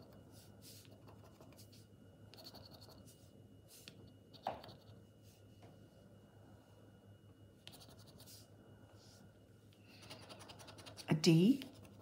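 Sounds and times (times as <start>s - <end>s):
scratching a scratchcard: 2.4s - 3.1s, 7.7s - 8.4s, 9.9s - 12.0s.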